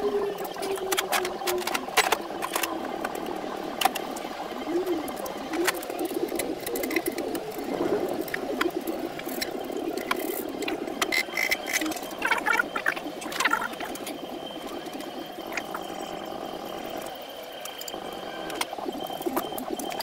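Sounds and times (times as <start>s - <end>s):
steady background noise: 0.0s - 20.0s.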